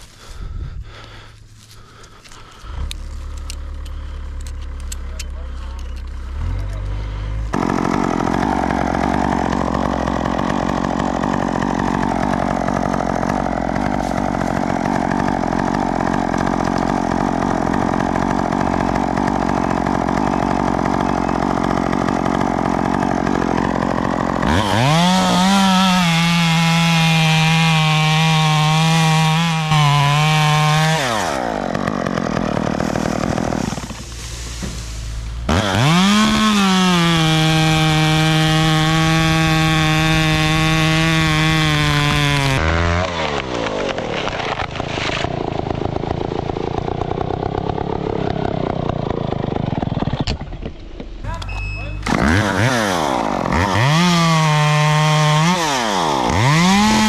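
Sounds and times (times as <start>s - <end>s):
chainsaw idling and revving: 0.0s - 57.0s.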